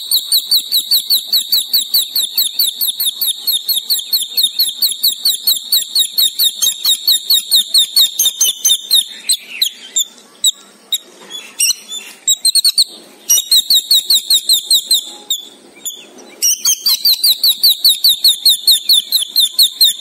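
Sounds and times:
bird chirping rapidly: 0:00.0 - 0:20.0.

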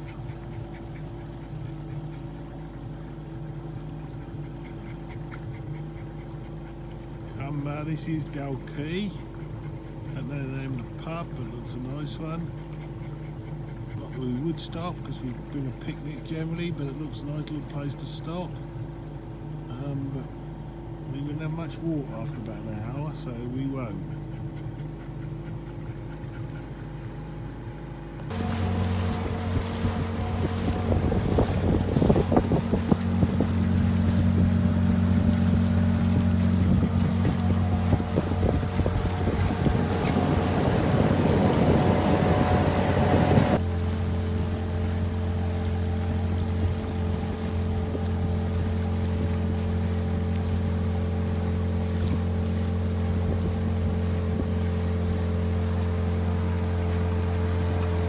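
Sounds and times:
outboard motor drone: 0:00.0 - 0:58.0
rush of wind and water: 0:00.0 - 0:58.0.

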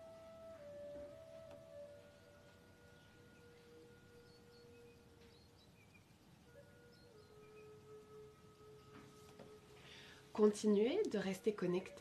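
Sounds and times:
slow meditative bell-like music: 0:00.0 - 0:05.8, 0:06.5 - 0:12.0.

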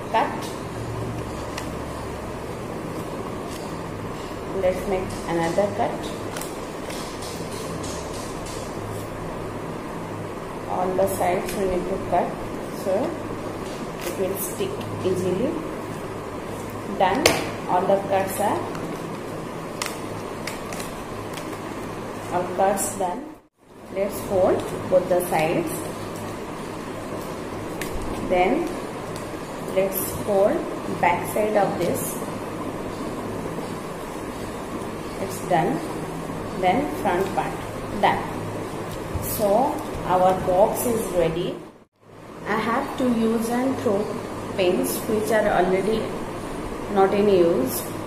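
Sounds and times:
steady low hum: 0:00.0 - 0:48.0
paper being folded: 0:18.3 - 0:22.4.

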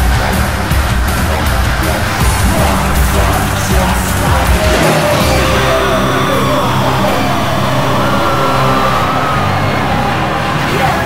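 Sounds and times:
metal band playing live: 0:00.0 - 0:11.0
long held high note: 0:02.2 - 0:10.6.

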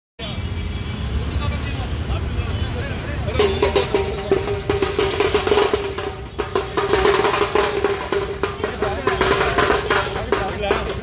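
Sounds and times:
noisy crowd: 0:00.2 - 0:11.0
traffic rumble: 0:00.2 - 0:11.0
held note of procession music: 0:03.3 - 0:11.0
rapid sharp drum strikes: 0:03.3 - 0:11.0.

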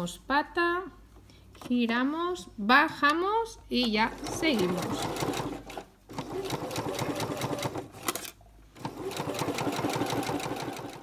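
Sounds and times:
sewing machine stitching: 0:04.1 - 0:11.0.

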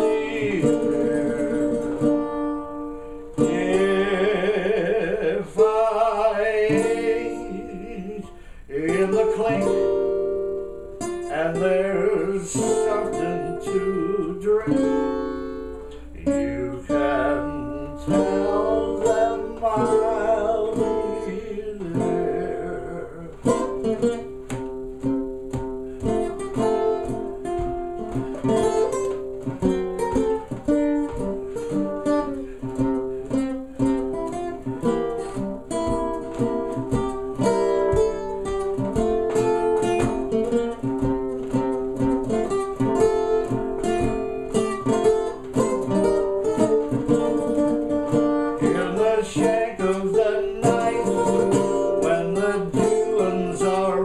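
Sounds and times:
banjo strumming chords: 0:00.0 - 0:54.0.

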